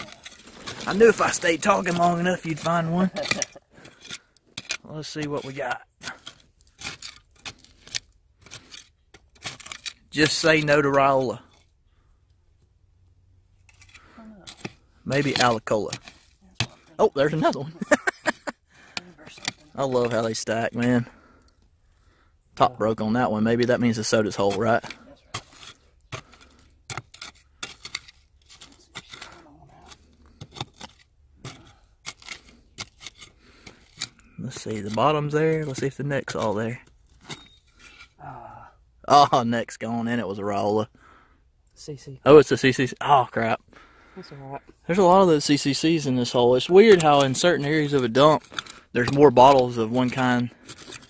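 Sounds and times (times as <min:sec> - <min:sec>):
hand scraping through soil: 0:00.0 - 0:11.6, 0:23.6 - 0:38.2, 0:44.9 - 0:51.0.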